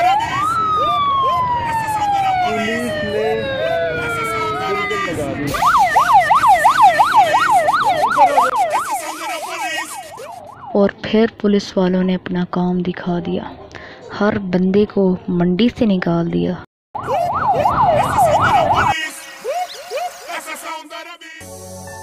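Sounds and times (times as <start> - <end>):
police siren wailing and yelping: 0.0 - 10.8, 17.0 - 20.4.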